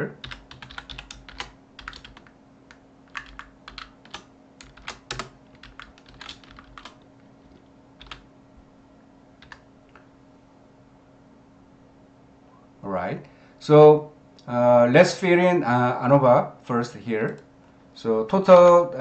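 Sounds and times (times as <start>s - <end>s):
faint steady hum: 0.0s - 19.0s
typing on computer keyboard: 0.2s - 8.2s, 9.4s - 9.6s.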